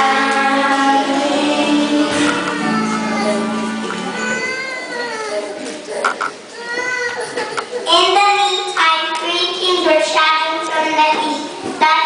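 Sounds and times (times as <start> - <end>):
young children singing: 0.0 - 5.1.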